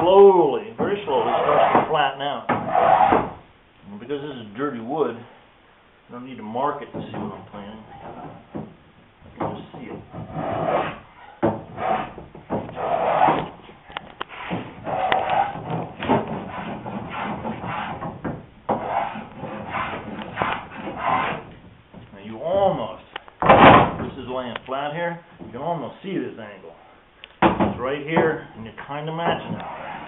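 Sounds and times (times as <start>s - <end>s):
hand plane shaving wood: 1.1s - 2.0s, 10.2s - 11.0s, 12.8s - 13.5s, 14.3s - 18.0s, 18.7s - 21.5s.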